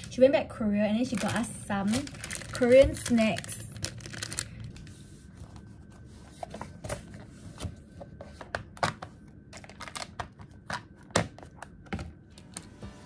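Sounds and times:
paper rustling: 1.1s - 8.5s.

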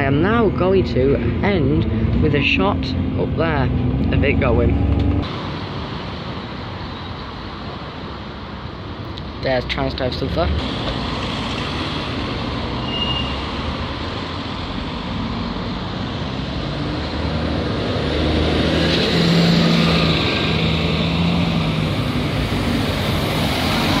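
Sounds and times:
street traffic: 0.0s - 24.0s
bus engine pulling away: 10.1s - 24.0s.

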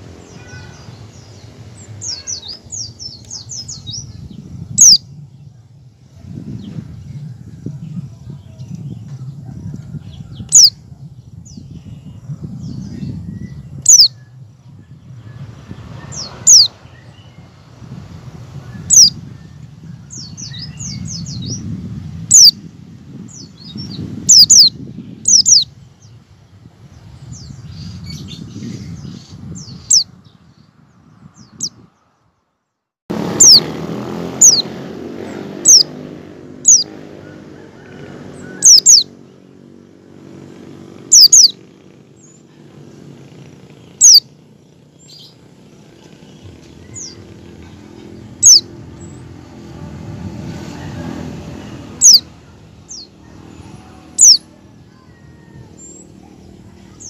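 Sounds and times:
bird call notes: 16.2s - 16.8s, 35.6s - 36.1s, 37.6s - 39.2s, 41.1s - 42.4s, 43.8s - 44.3s, 48.4s - 49.2s, 52.0s - 57.0s.

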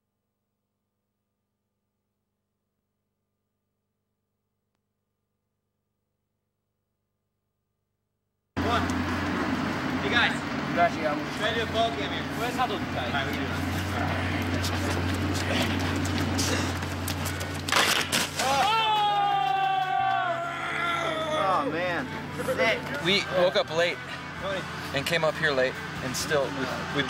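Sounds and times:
steady low hum: 8.6s - 17.7s
voices: 9.9s - 17.6s, 18.4s - 27.0s.

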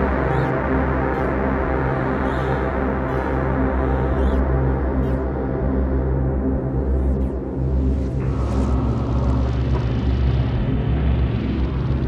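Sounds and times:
ambient electronic drone music: 0.0s - 12.0s.

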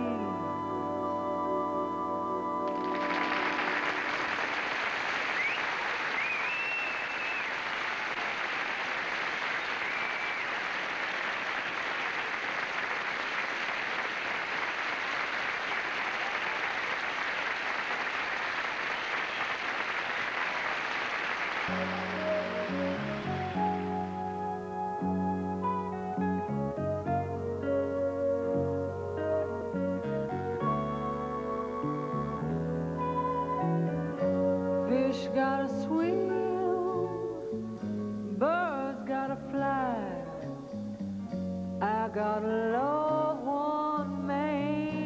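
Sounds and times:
ballad held notes: 0.0s - 4.7s, 21.7s - 45.0s
guitar playing: 0.0s - 4.7s, 21.7s - 45.0s
studio audience applauding: 2.7s - 23.9s
whistles from audience: 3.0s - 12.2s, 18.8s - 19.8s.

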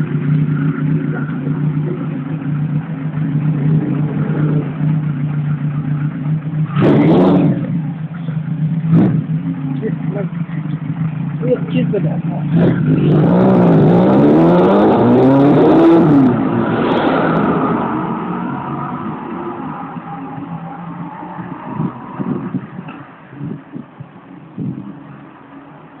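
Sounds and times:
motorcycle engine accelerating: 0.0s - 26.0s.

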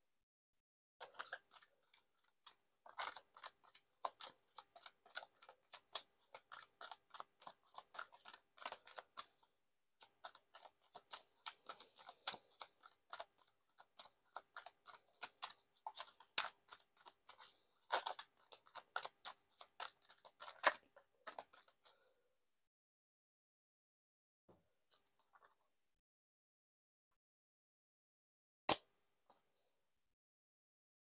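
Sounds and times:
cards being shuffled: 1.0s - 9.4s, 10.1s - 21.9s.

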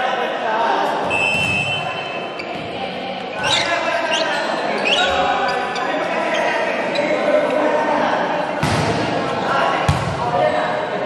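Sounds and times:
voices echoing in gym hall: 0.0s - 11.0s
sneakers squeaking on court floor: 1.0s - 7.6s.

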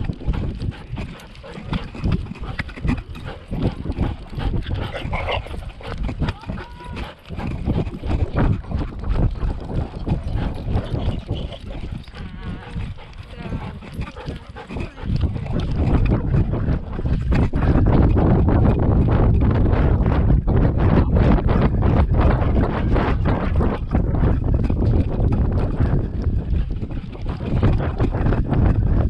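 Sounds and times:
fur and collar rubbing microphone: 0.0s - 29.0s.

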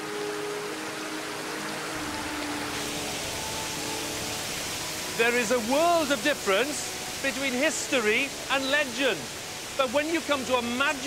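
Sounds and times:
soft sustained music: 0.0s - 11.0s
waterfall rushing: 0.0s - 11.0s.

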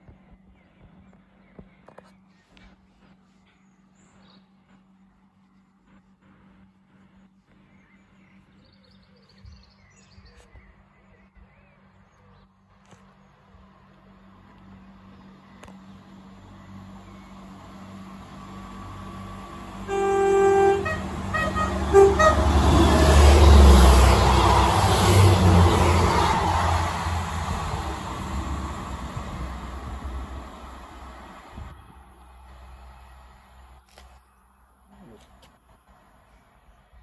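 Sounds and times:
train rumbling past: 3.0s - 9.1s, 13.5s - 33.7s
train horn blasts: 19.8s - 24.4s.

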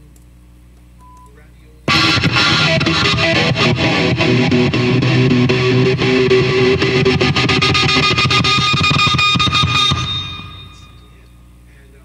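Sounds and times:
amplifier hum: 0.5s - 12.0s
distorted electric guitar: 1.9s - 11.2s.

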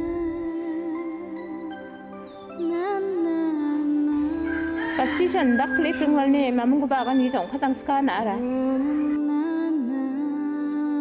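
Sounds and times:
background music with singing: 0.0s - 11.0s
rooster crowing: 4.2s - 6.4s.

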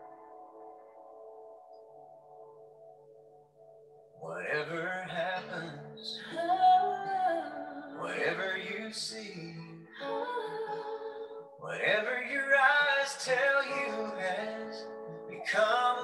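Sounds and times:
person singing: 4.2s - 16.0s.

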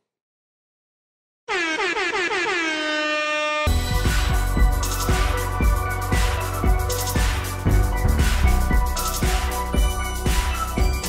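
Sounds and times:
air horn blasts: 1.5s - 4.4s
music with drums: 3.7s - 11.0s.

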